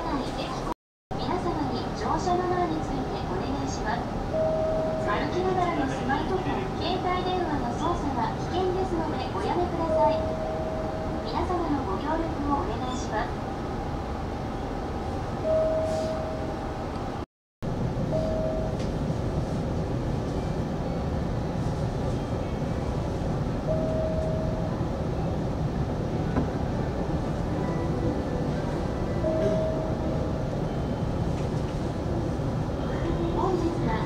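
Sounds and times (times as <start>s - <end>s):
train equipment rumble and hum: 0.0s - 34.0s.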